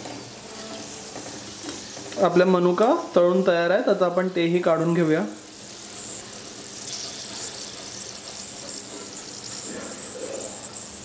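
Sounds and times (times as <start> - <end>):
raisins sizzling in hot oil: 0.0 - 11.0.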